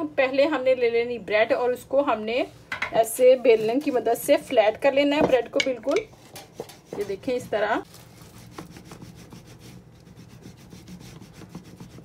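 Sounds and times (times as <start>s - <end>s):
rolling pin rubbing over bread: 3.2s - 4.6s, 6.1s - 12.0s.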